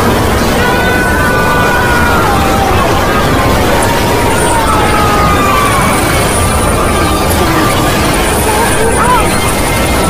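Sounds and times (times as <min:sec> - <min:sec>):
dense noise: 0:00.0 - 0:10.0
garbled voice-like sounds: 0:00.0 - 0:10.0
wobbling tones: 0:00.0 - 0:10.0.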